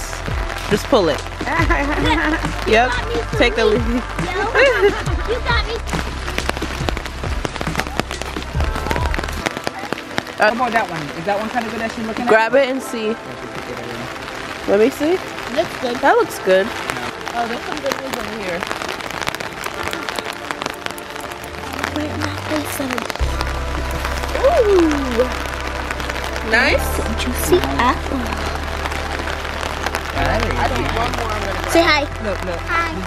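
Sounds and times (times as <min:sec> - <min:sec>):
low rumble: 0:00.0 - 0:09.6, 0:21.2 - 0:33.0
background music bass note: 0:00.0 - 0:33.0
raindrops tapping on umbrella: 0:00.0 - 0:33.0.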